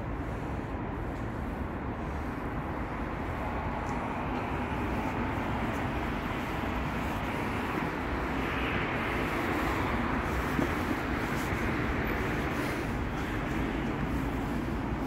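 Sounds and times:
road traffic: 0.0s - 15.0s.

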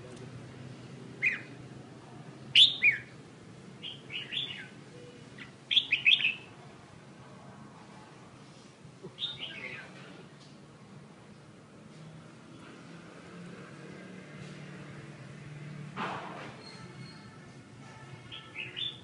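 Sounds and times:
songbird chirping: 1.2s - 1.6s, 2.4s - 3.2s, 3.8s - 6.6s, 9.1s - 10.0s, 18.2s - 19.0s.

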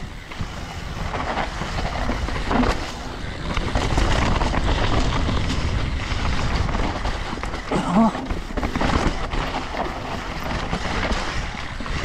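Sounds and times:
bike knocks and rattles: 0.0s - 12.0s
bike tyres rumbling on dirt: 0.0s - 12.0s
wind buffeting microphone: 0.0s - 12.0s.

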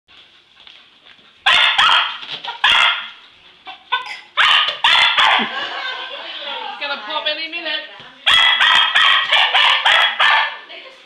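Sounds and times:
dog barking excitedly: 1.4s - 5.6s, 8.2s - 10.7s.

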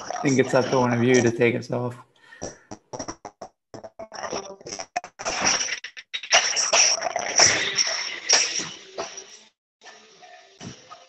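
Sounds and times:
choppy video call clicks and bursts: 0.0s - 1.9s.

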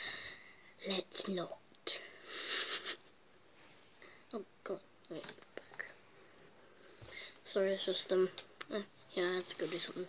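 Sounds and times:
person sniffing: 2.2s - 3.0s.

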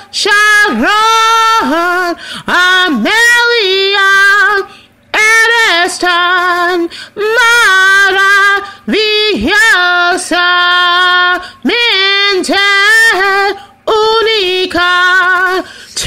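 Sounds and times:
woman singing unaccompanied: 0.0s - 16.0s.

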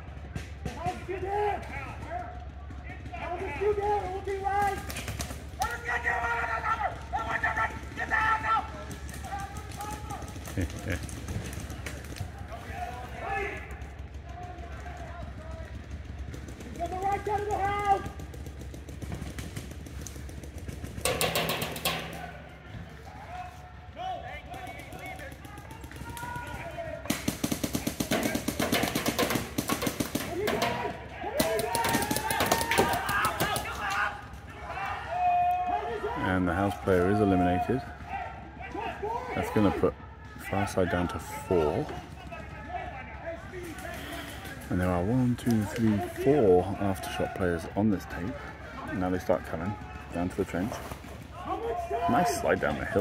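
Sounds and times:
players calling out: 0.0s - 53.0s
paintball markers firing: 13.4s - 22.6s, 24.6s - 33.9s.

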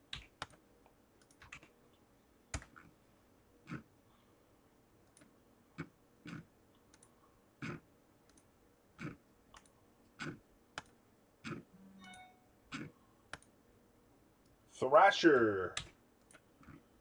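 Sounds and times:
computer mouse clicking: 0.1s - 1.7s, 5.0s - 11.6s, 12.7s - 13.5s.

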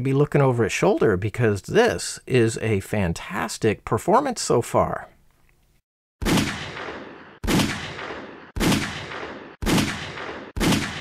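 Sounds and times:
pistol shots: 6.2s - 11.0s.

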